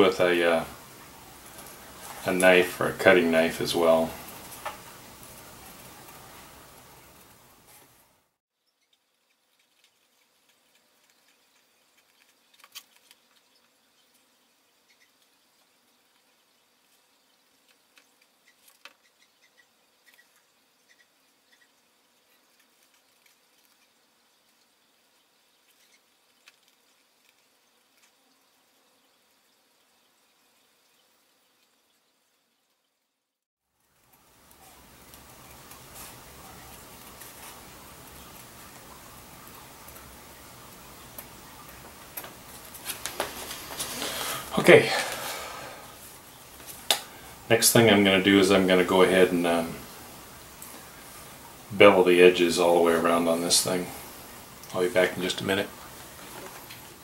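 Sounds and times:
steady hiss: 0.0 - 32.6, 33.7 - 57.0.

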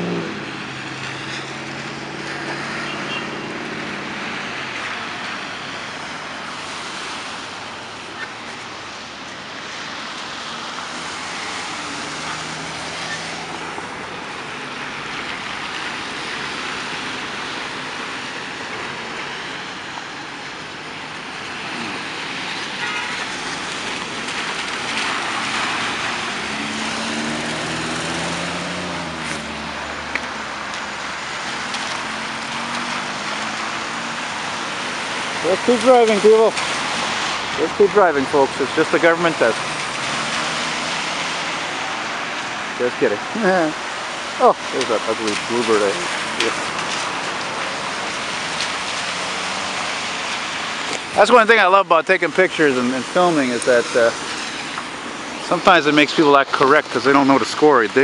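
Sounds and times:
traffic on wet road: 0.0 - 58.0
passing vehicle engine hum: 9.7 - 19.8, 20.9 - 58.0.

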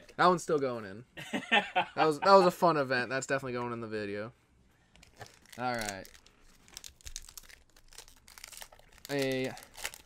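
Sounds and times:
foil wrapper crinkling: 5.0 - 10.0.

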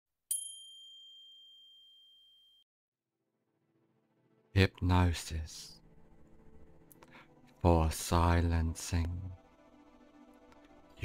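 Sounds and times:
high chime ringing: 0.3 - 2.6.

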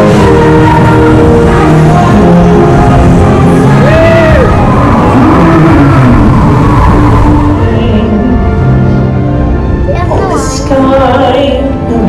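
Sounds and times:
ride soundtrack and effects: 0.0 - 11.5.

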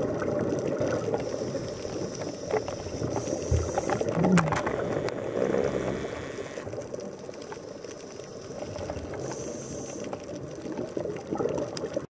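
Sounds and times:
underwater bubbling rumble: 0.0 - 12.0
small clicks: 0.9 - 10.9.

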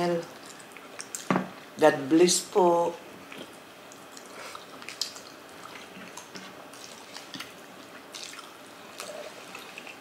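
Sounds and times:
wet clicks of people eating: 0.3 - 1.3, 3.2 - 10.0.

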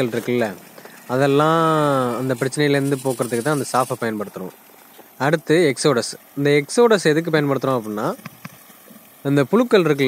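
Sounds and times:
man talking: 0.0 - 4.6, 5.2 - 8.2, 9.2 - 10.0.

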